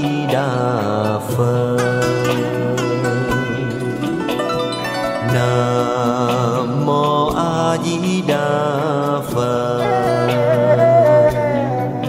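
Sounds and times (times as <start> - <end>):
devotional chant singing: 0.0 - 4.4, 5.1 - 11.9
instrumental accompaniment: 0.0 - 12.0.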